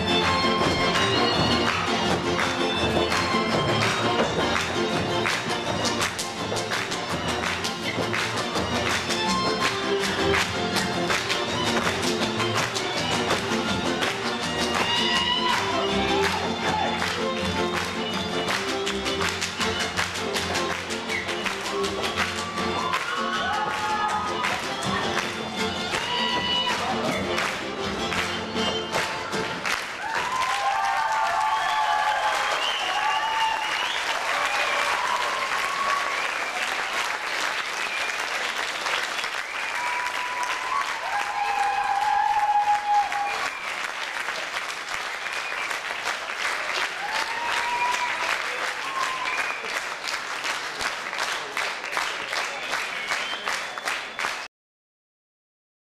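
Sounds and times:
folk band music: 0.0s - 29.9s
audience clapping: 0.0s - 54.5s.

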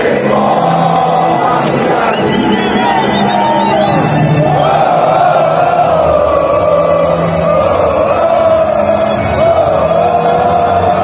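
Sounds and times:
crowd singing a chant: 0.0s - 11.0s.

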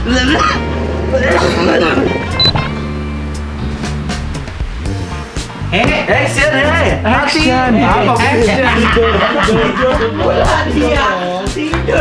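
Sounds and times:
music with low held notes: 0.0s - 12.0s.

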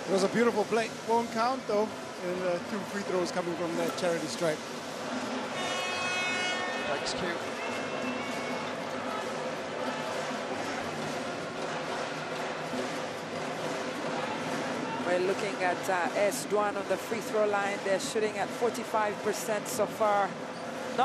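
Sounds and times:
murmur of crowd in a large hall: 0.0s - 21.0s.

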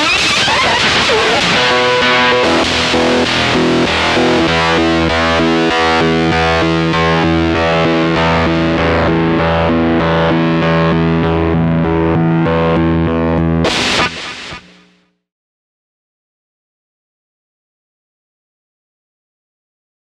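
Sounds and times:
loud guitar strum: 0.0s - 15.0s
fuzzed electric guitar riff: 0.0s - 15.1s.

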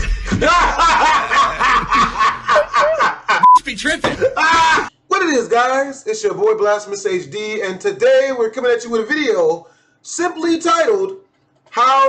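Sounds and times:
man laughing hard: 0.0s - 4.9s.

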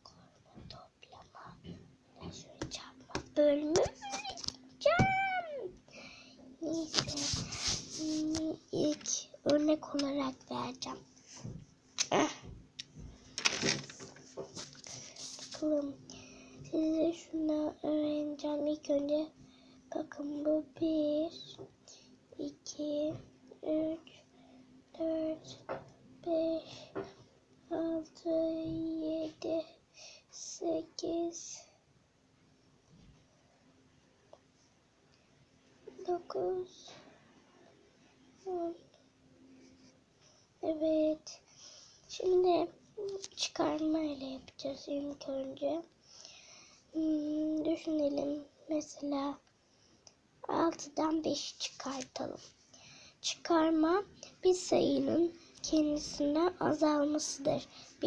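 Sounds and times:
child whispering: 0.0s - 5.7s, 6.6s - 9.4s
child singing sing-song: 22.4s - 24.1s, 27.7s - 29.8s, 36.0s - 37.0s.

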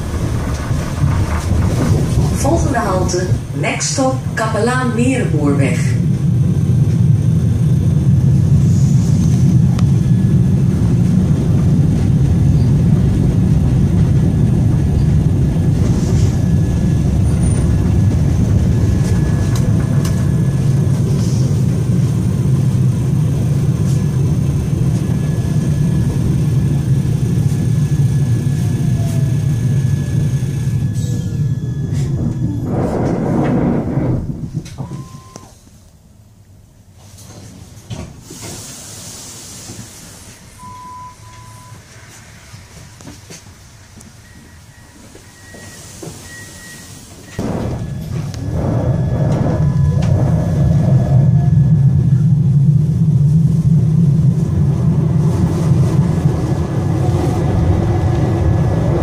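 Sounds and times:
tram wheels rumbling on rail: 0.0s - 59.0s.

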